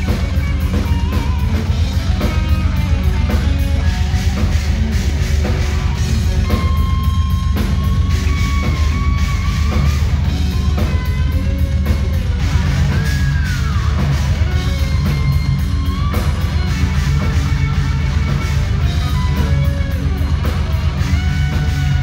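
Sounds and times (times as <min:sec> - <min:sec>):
hard rock band playing: 0:00.0 - 0:22.0.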